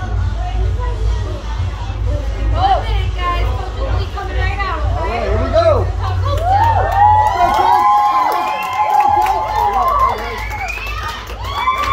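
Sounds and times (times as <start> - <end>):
children cheering and yelling: 6.6 - 11.9.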